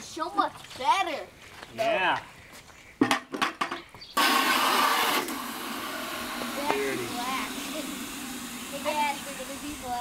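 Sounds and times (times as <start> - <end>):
garden hose spraying water: 4.2 - 10.0.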